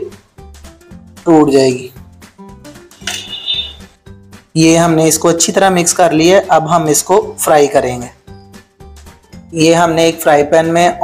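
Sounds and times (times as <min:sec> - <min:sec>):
steel bowl clinking: 0:03.0 - 0:03.8.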